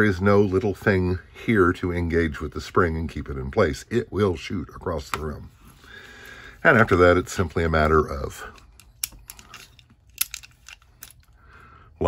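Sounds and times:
metallic clicks of pistol handling: 8.5s - 11.4s.

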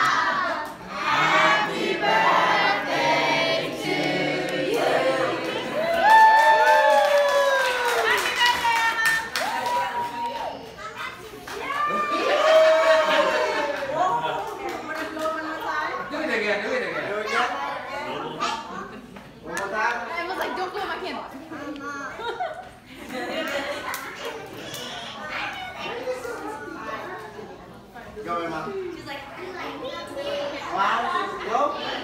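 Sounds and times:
adults talking: 0.0s - 6.0s, 10.4s - 32.0s
children talking and calling out: 10.5s - 12.3s, 23.8s - 27.6s, 29.2s - 32.0s.

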